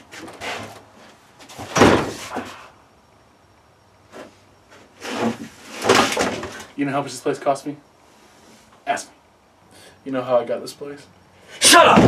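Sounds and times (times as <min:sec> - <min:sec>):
door scraping: 0:00.0 - 0:02.5, 0:04.1 - 0:06.7.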